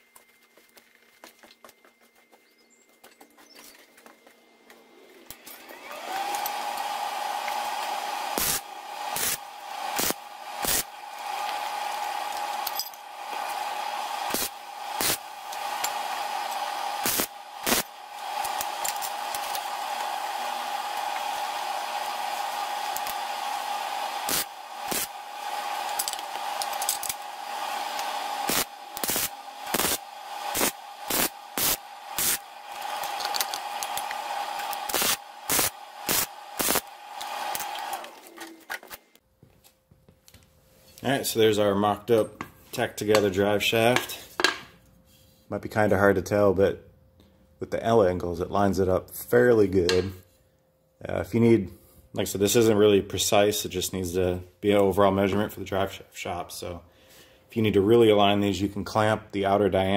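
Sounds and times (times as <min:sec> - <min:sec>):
arc welder crackling: 0:05.2 - 0:39.2.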